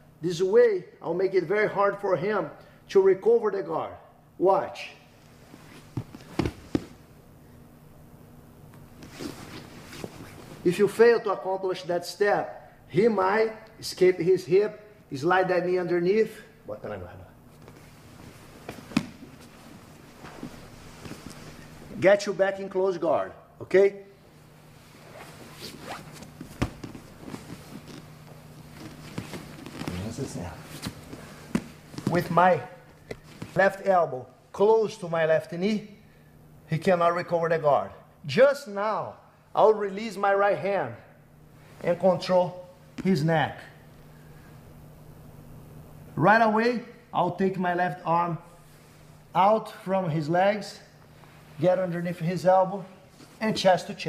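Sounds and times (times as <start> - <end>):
fabric scuffing on mat: 9.0 - 10.6, 17.5 - 21.8, 24.4 - 32.3.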